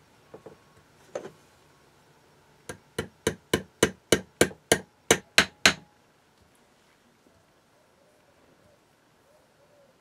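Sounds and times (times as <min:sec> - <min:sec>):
small hammer tapping a pin: 0:02.7 - 0:05.8.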